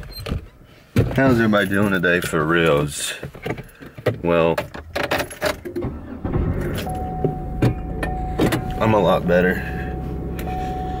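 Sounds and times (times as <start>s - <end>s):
car keys jangling: 4.7s - 8.8s
car engine humming: 5.0s - 11.0s.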